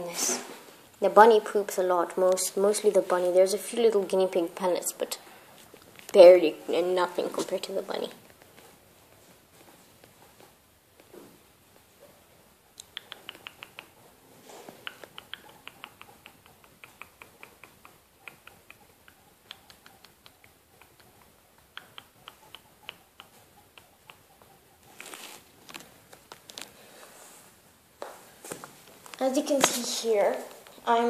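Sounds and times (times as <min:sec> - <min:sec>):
rustling and handling noise: 0:05.2 - 0:12.6, 0:13.6 - 0:31.0.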